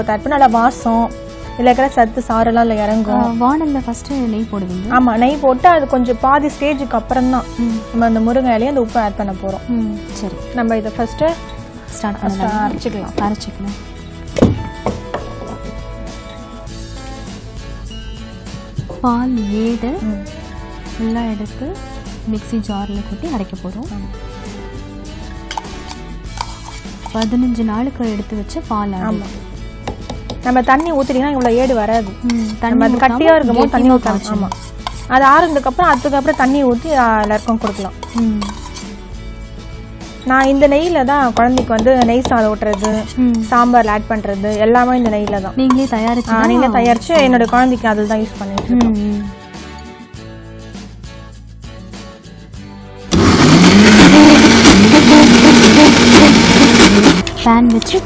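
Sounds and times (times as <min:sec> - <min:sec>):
background music: 0:00.0 - 0:58.0
spoon scraping steel vessels: 0:25.4 - 0:27.4, 0:30.1 - 0:39.2, 0:40.2 - 0:48.7
electric mixer grinder running: 0:53.1 - 0:57.4.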